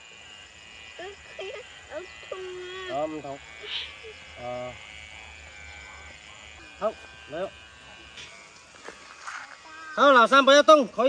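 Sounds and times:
electric hair clippers buzzing: 0:00.0 - 0:11.0.

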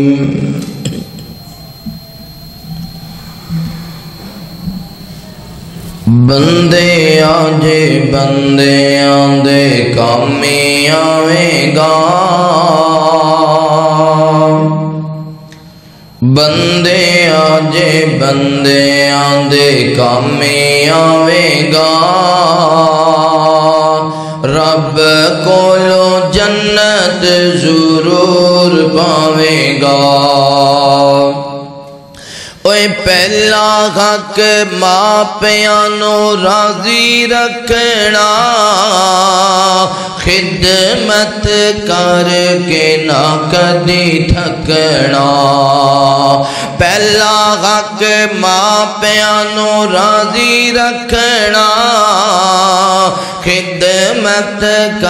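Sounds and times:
man singing: 0:00.0 - 0:02.0, 0:06.0 - 0:15.6, 0:16.2 - 0:55.0
pa system hum and hiss: 0:00.0 - 0:21.0, 0:31.8 - 0:33.4
high-pitched whine: 0:00.0 - 0:45.4.

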